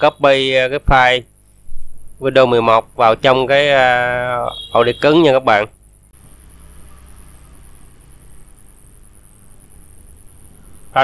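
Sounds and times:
faint high-pitched buzz: 0.0 - 11.0.

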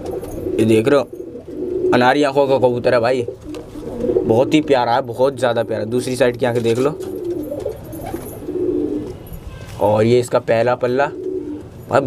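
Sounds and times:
pigeon cooing: 0.0 - 9.2, 10.8 - 11.8.

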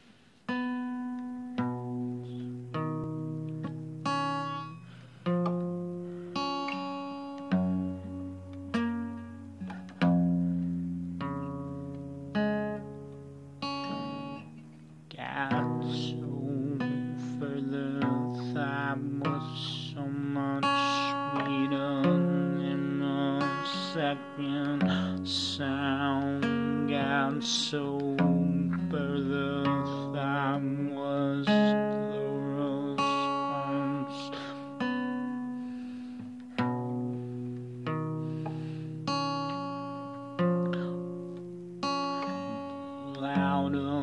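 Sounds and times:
acoustic guitar playing solo: 0.0 - 44.0.

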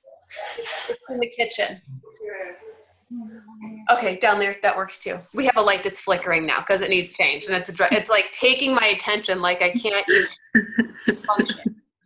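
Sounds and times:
held vocal sound: 0.0 - 1.2, 1.8 - 4.1, 10.0 - 11.8
quiet speech: 0.0 - 11.8.

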